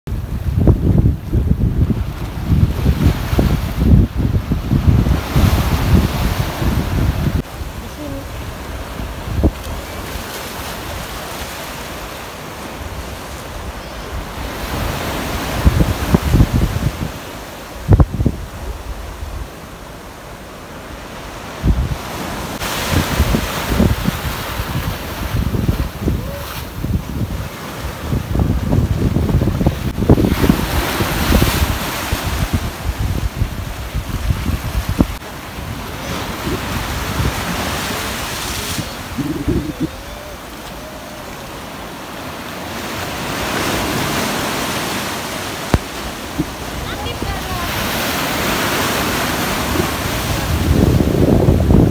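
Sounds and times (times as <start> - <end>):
wind buffeting microphone: 0.1 - 11.3, 12.8 - 19.6, 21.4 - 51.9
small waves breaking and washing: 0.1 - 51.9.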